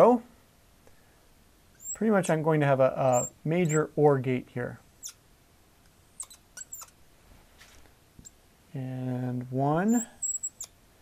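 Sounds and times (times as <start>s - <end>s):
marker squeaking on board: 1.8s - 2.1s, 3.1s - 3.9s, 6.2s - 7.0s, 9.9s - 10.7s.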